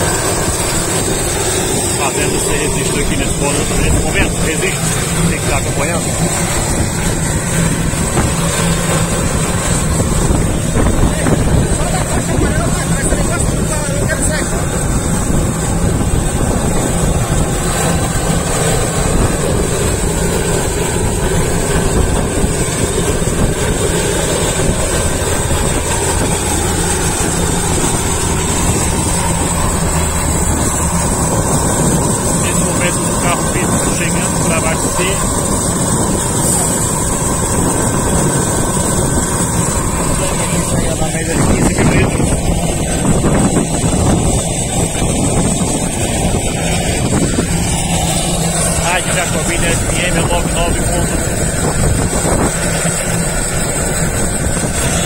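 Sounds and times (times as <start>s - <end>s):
turboprop engine idling: 0.0s - 55.0s.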